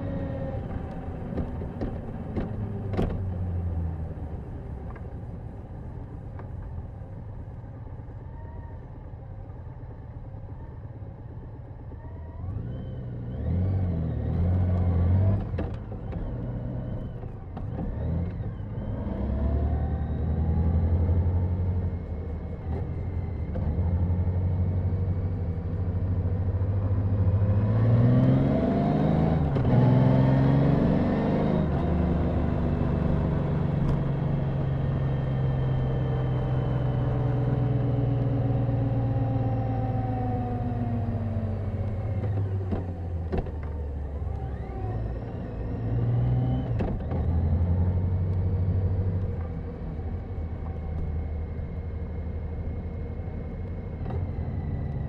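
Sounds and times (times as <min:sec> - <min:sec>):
motorcycle engine accelerating: 0:11.9 - 0:55.0.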